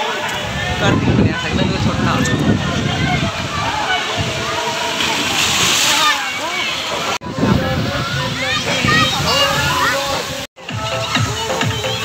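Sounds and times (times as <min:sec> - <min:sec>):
children's voices: 0:00.2 - 0:12.0
pool water sloshing: 0:01.4 - 0:12.0
electronic music with steady beat: 0:07.4 - 0:12.0.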